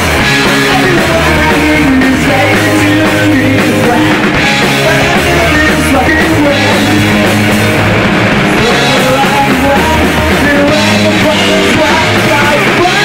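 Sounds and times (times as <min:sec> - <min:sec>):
man singing: 0:00.0 - 0:07.8, 0:08.4 - 0:13.0
punk rock band playing live: 0:00.0 - 0:13.0.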